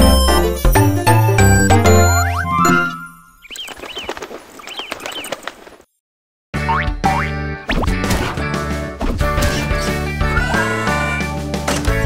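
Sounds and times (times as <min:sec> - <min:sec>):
cartoon soundtrack music: 0:00.0 - 0:03.4, 0:06.6 - 0:12.0.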